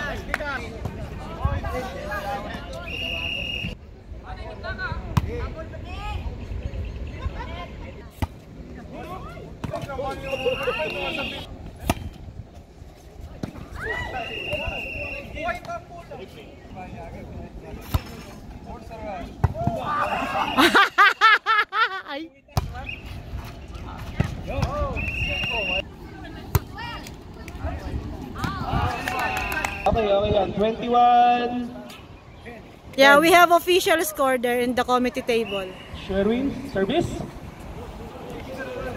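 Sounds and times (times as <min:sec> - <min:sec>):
players shouting: 0:19.4 - 0:20.8.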